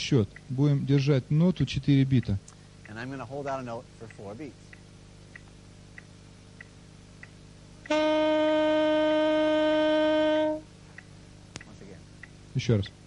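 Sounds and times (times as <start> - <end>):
metronome clicking: 0.3 - 1.2, 4.0 - 8.1, 10.9 - 12.4
saxophone long note: 7.8 - 10.8.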